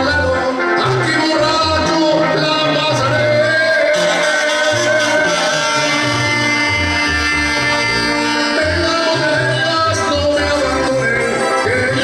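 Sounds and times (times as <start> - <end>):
pulsing bass line: 0.0 - 12.0
held horn notes: 3.1 - 12.0.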